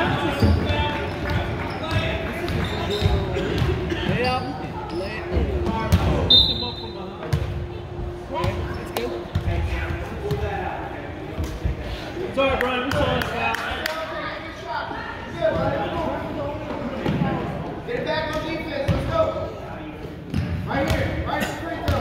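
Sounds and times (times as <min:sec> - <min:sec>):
spectators' voices echoing: 0:00.0 - 0:22.0.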